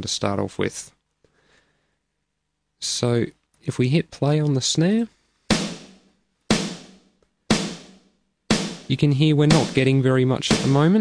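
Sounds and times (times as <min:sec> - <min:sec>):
snare drum hits: 0:05.5 - 0:11.0.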